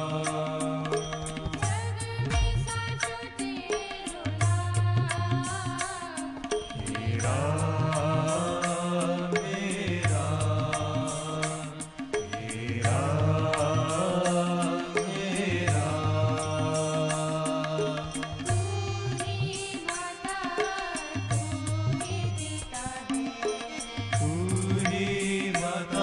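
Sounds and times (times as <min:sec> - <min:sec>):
harmonium and synthesizer melody: 0:00.0 - 0:26.0
tabla and drum pad rhythm: 0:00.0 - 0:26.0.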